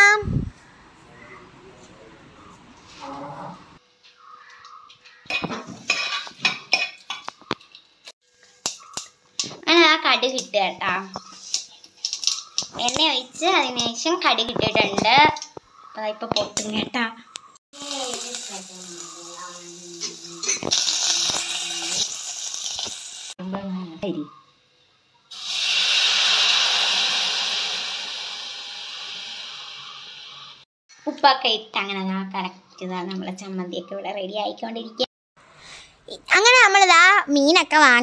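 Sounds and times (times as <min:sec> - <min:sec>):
metal kitchenware clinking: 0:04.9 - 0:07.8, 0:11.2 - 0:12.8
hot oil sizzling in a pot: 0:08.4 - 0:13.8, 0:17.8 - 0:23.4, 0:25.3 - 0:30.7.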